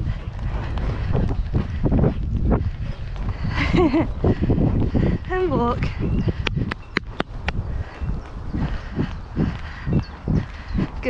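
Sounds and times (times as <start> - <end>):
horse hooves on grass: 0.0 - 11.0
wind rumble on microphone: 0.0 - 11.0.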